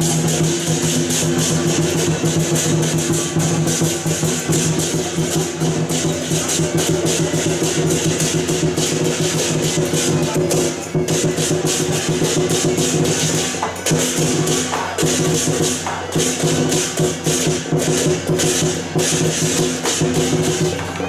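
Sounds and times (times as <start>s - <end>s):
cymbals clashing: 0.0s - 21.0s
drum beating: 0.0s - 21.0s.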